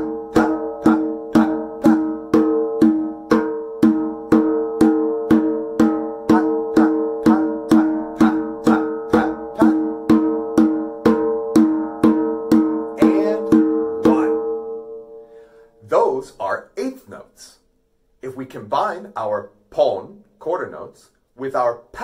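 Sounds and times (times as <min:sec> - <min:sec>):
djembe strokes: 0:00.0 - 0:15.3
backing music: 0:00.0 - 0:15.4.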